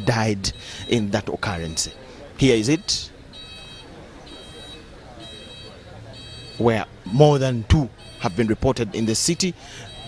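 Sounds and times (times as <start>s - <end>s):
electronic alarm beeping: 0.0s - 10.0s
low street noise: 0.0s - 10.0s.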